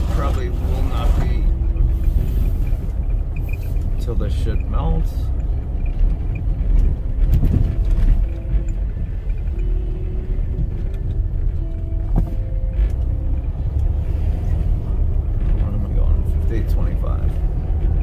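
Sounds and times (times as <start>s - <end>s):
car driving rumble: 0.0s - 18.0s.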